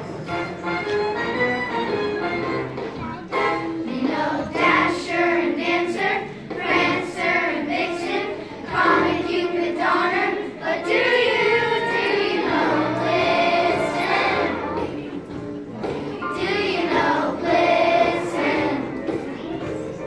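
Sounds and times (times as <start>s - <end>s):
children's choir singing: 3.4s - 20.0s.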